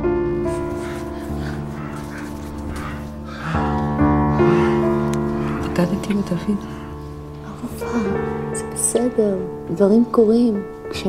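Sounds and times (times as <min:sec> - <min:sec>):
soft music chords: 0:00.0 - 0:11.0
woman panting: 0:00.5 - 0:08.3.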